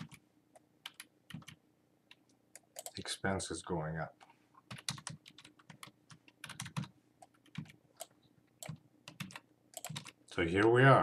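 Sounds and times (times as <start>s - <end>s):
computer keyboard typing: 0.0s - 0.2s, 0.8s - 3.0s, 4.6s - 10.2s.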